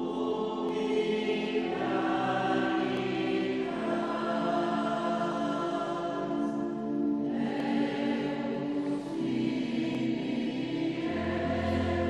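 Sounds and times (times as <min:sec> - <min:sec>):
choir singing sustained notes: 0:00.0 - 0:12.0.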